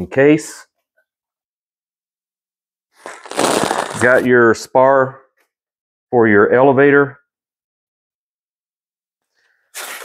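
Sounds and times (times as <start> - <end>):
rustling foam packaging: 3.0 - 4.3.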